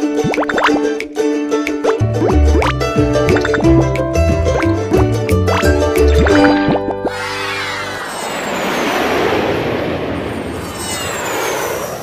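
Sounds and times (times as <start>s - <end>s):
jet airliner flyby: 7.1s - 12.0s.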